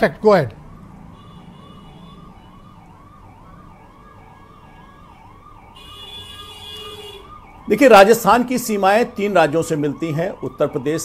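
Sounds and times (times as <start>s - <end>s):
faint emergency siren: 0.2s - 11.0s.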